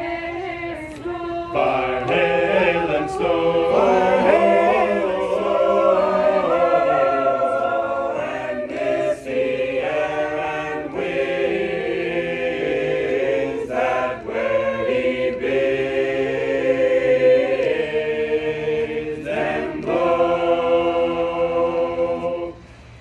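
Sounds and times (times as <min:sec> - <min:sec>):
choir singing a hymn: 0:00.0 - 0:23.0.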